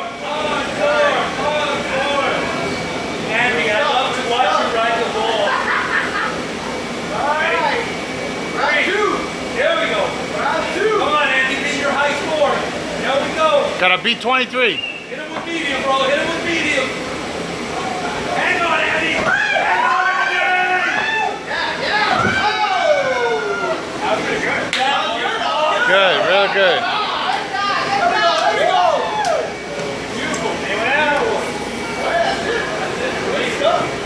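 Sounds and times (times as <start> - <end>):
people cheering and yelling: 17.6 - 30.2.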